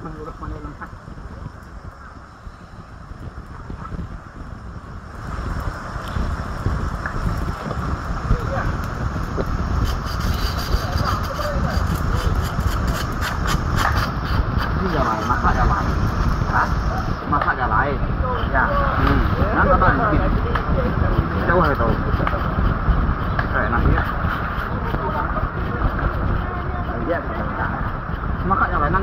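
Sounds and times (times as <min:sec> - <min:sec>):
knife scraping fish on rock: 0:09.8 - 0:15.2.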